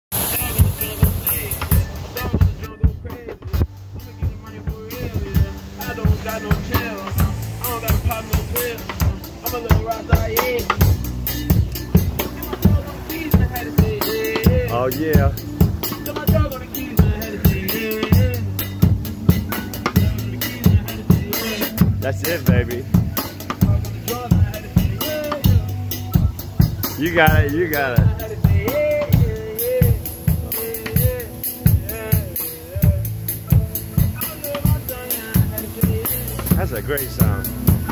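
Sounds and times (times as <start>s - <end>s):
drum kit steady beat: 0.0s - 37.9s
keyboard: 0.1s - 37.9s
live band music: 0.1s - 37.9s
person singing: 0.1s - 37.9s.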